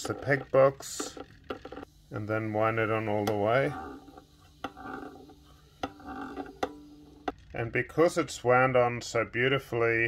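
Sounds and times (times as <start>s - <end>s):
tuning peg turning noise: 0.0s - 8.3s.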